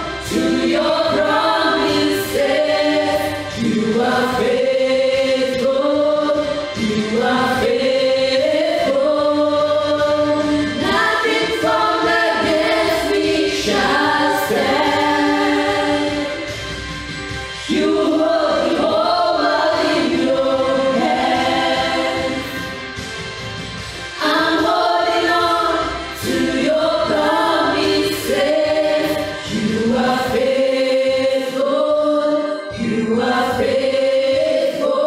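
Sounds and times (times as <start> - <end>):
group singing gospel song: 0.0 - 35.0.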